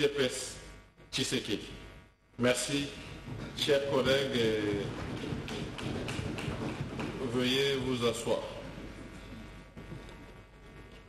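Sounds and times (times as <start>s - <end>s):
steady low hum: 0.0s - 11.0s
sharp taps and knocks: 3.1s - 8.0s.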